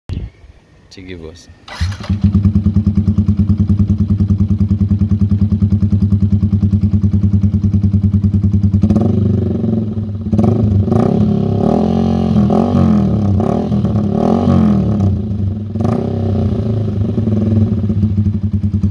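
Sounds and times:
motorcycle engine idling and revving: 0:01.6 - 0:18.9.

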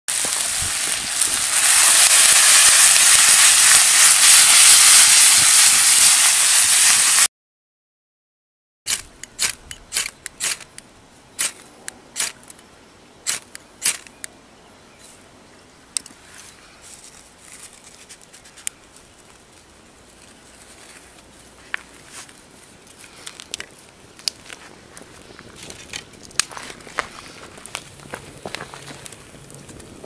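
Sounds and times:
food sizzling in frying pan: 0:00.1 - 0:07.3.

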